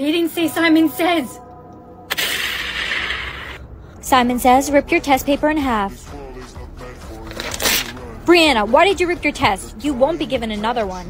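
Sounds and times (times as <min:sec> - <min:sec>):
quiet background music: 0:00.0 - 0:11.0
paper tearing: 0:07.3 - 0:08.0.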